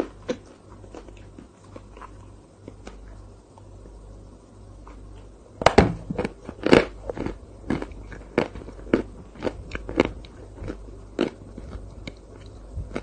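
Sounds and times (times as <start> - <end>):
chewing with crisp crunches: 0.0 - 3.7, 6.1 - 13.0.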